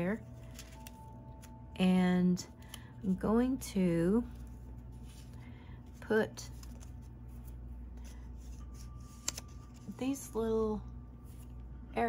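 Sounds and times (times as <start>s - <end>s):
low hum: 0.0s - 12.0s
paper stickers rustling: 0.1s - 1.6s, 4.2s - 10.2s.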